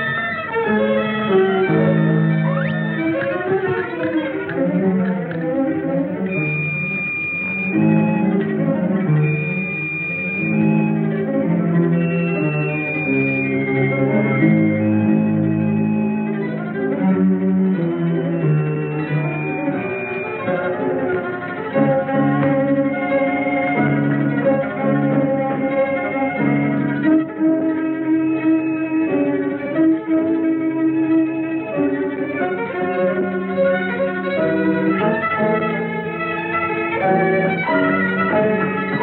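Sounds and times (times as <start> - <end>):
orchestral strings playing held notes: 0.0 - 39.0.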